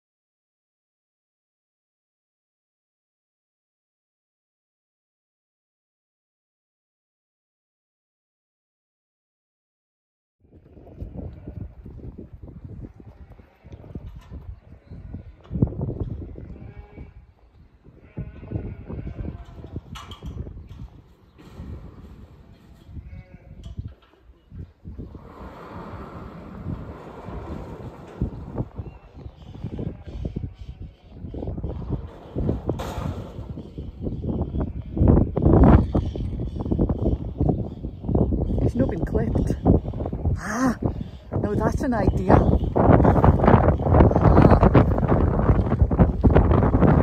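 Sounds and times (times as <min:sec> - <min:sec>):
low rumble: 0:24.9 - 0:35.4.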